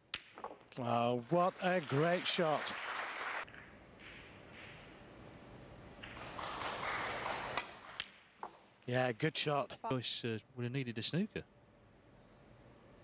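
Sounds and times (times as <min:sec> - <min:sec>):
snooker balls clicking: 0:00.1 - 0:00.8.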